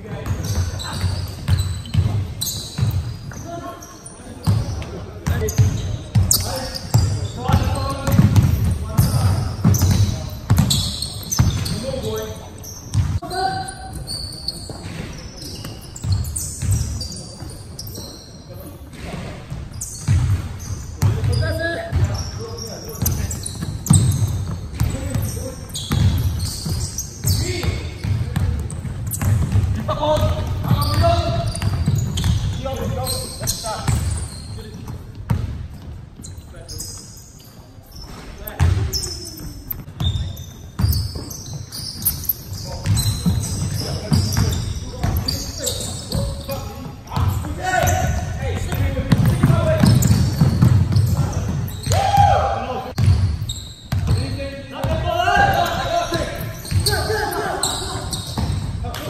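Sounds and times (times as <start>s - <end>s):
basketball bouncing on hardwood floor: 4.5s - 11.8s, 12.9s - 13.2s, 25.9s - 33.0s, 34.8s - 35.9s, 47.1s - 52.4s, 53.0s - 57.1s, 58.2s - 58.8s
players calling out: 38.5s - 59.0s.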